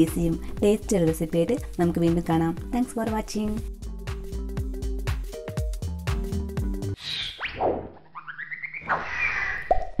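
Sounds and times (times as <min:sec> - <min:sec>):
short rising chirps: 0:07.0 - 0:09.7.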